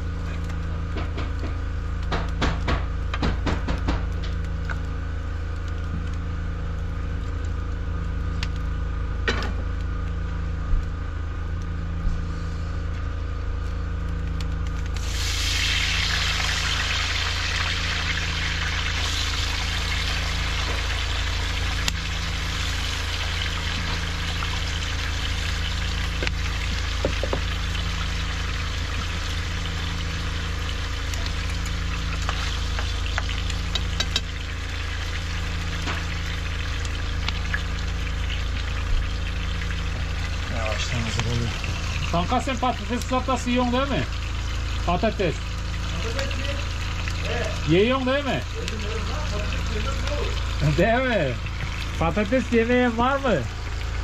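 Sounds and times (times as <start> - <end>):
constant low hum: 0.0 - 54.0
wood fire crackling: 0.0 - 54.0.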